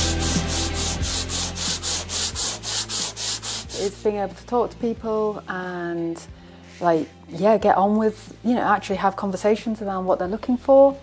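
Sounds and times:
hand sanding rasping strokes: 0.0s - 3.9s.

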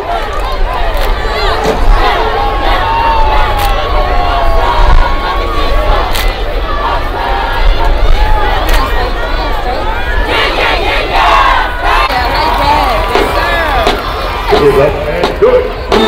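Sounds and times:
crowd yelling and cheering: 0.0s - 16.0s.

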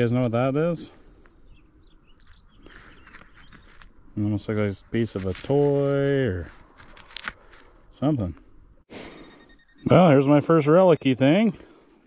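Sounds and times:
faint bird chirps: 1.4s - 3.9s, 8.9s - 11.8s.

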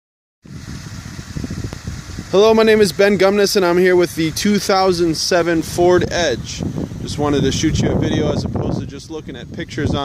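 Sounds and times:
low outdoor rumble: 0.4s - 10.0s.

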